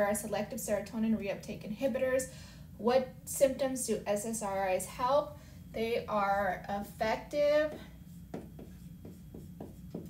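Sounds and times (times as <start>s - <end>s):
marker writing on whiteboard: 7.3s - 10.0s.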